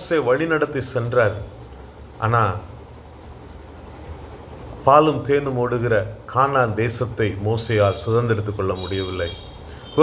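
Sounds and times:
man speaking: 0:00.0 - 0:02.8, 0:04.8 - 0:10.0
low background hum and hiss: 0:00.0 - 0:10.0.

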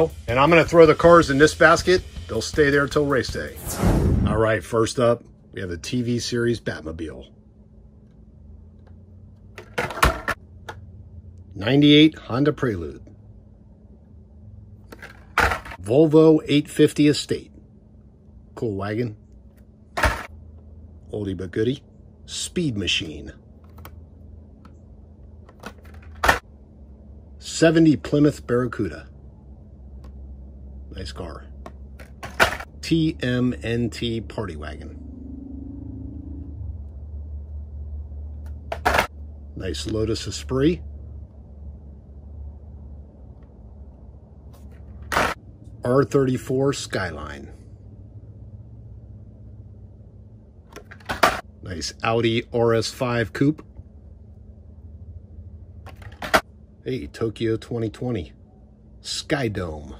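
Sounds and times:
low steady hum: 0:00.0 - 0:59.9.

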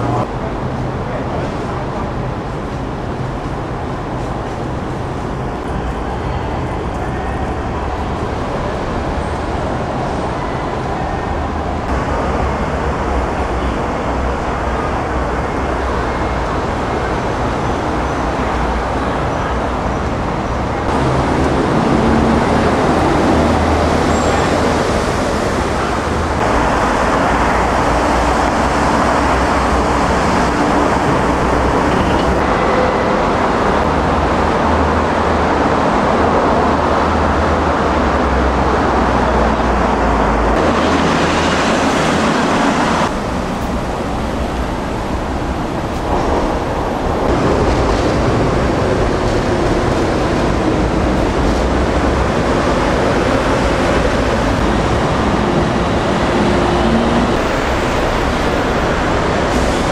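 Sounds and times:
road traffic roar: 0:00.0 - 0:59.9.

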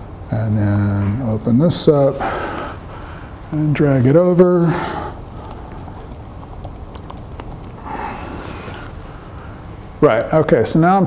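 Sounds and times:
laptop keyboard typing: 0:04.9 - 0:09.7.

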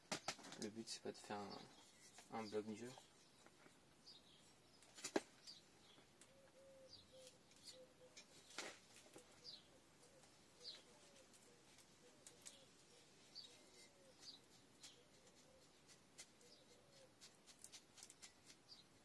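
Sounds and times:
birds chirping: 0:00.1 - 0:19.0
lower repeated bird notes: 0:01.4 - 0:17.4.

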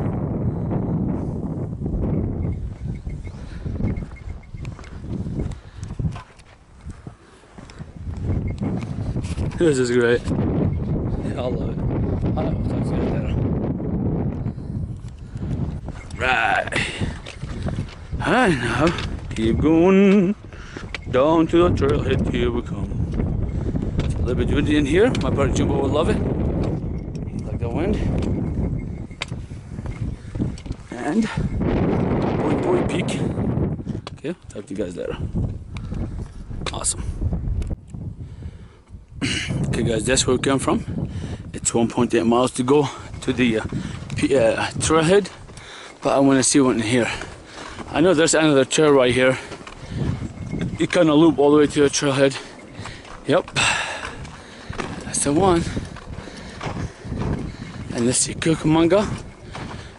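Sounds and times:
wind buffeting microphone: 0:00.0 - 0:59.9
footsteps on sandy dirt: 0:01.4 - 0:36.5, 0:40.8 - 0:59.9.

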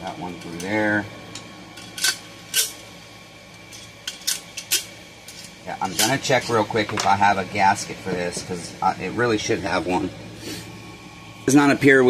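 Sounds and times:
metallic clicks of small parts: 0:00.4 - 0:02.8, 0:03.6 - 0:06.2.

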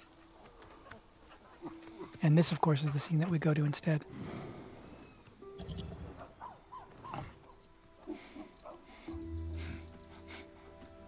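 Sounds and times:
quiet sustained music score: 0:00.0 - 0:11.0.

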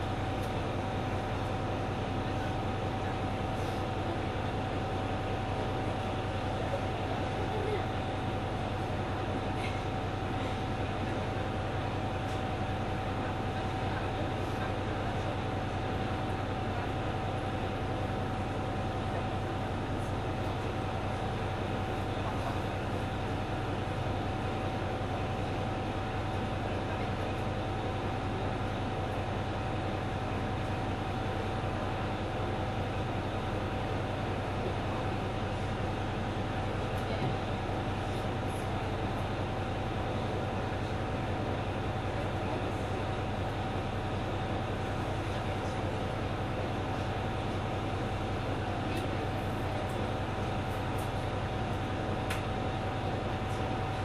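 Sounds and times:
diesel railcar engine running: 0:00.0 - 0:54.0.

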